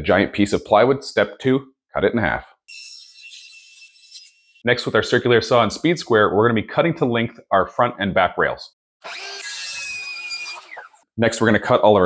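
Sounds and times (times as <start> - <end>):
circular saw cutting wood: 2.7 - 4.6, 9.0 - 11.0.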